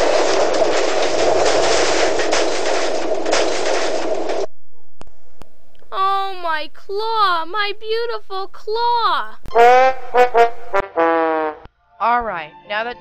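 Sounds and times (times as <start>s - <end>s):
rough crashing noise: 0.0s - 5.4s.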